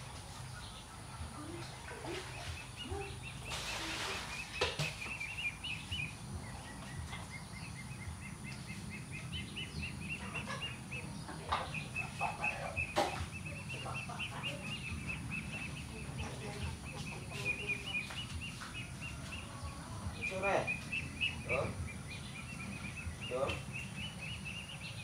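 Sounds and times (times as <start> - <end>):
bird chirping rapidly: 4.4 - 19.0, 20.1 - 25.0.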